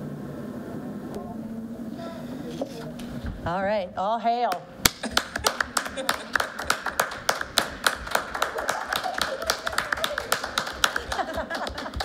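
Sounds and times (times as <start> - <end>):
people applauding: 4.8 - 12.0.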